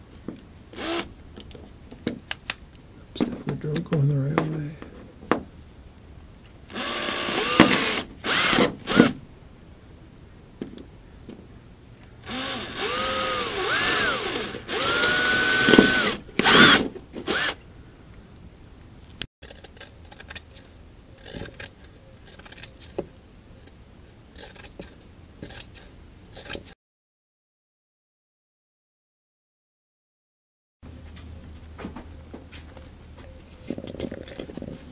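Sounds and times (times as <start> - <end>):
electric drill boring through fibreglass: 6.7 - 9.1, 12.2 - 17.6.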